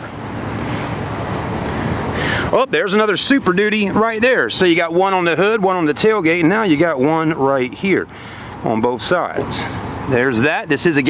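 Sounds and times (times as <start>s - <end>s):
road traffic rushing by: 0.0s - 11.0s.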